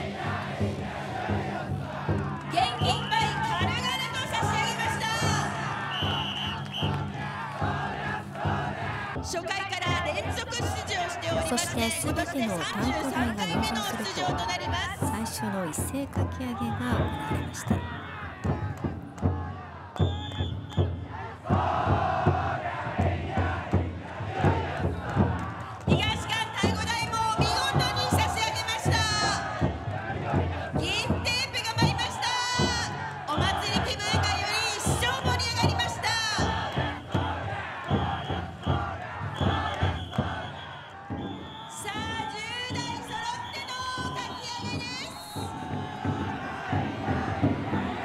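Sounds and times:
group shouting a chant: 0.0 - 15.7, 16.3 - 20.0, 21.0 - 41.4, 42.8 - 48.0
taiko drum beating: 0.0 - 40.4, 44.0 - 48.0.

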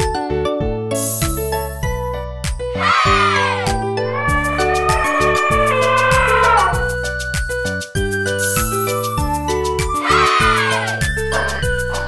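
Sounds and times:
cheerful background music: 0.0 - 12.0
elephant trumpeting: 4.0 - 7.0.

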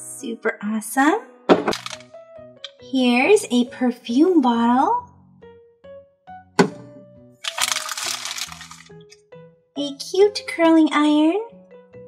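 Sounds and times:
soft background music: 0.0 - 12.0
plastic toy pieces clicking: 1.7 - 2.1, 7.4 - 8.9
plastic wrapping crinkling: 7.4 - 8.9.

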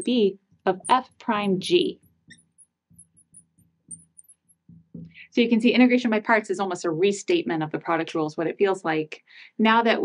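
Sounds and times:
marker squeaking on glass: 0.7 - 5.1.

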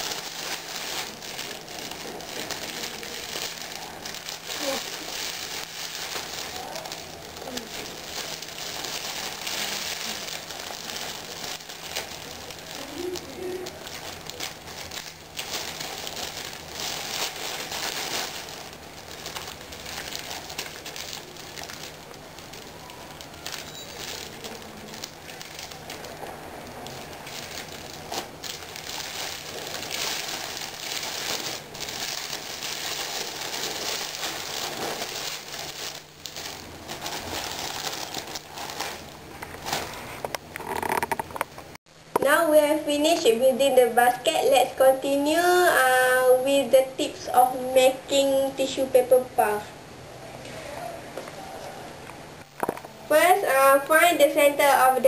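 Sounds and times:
cellophane wrap crinkling: 0.0 - 41.8.

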